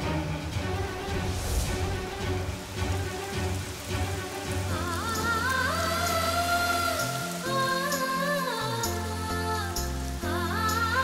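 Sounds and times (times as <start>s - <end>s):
background music with bass pulse: 0.0s - 11.0s
heavy rain falling: 0.0s - 11.0s.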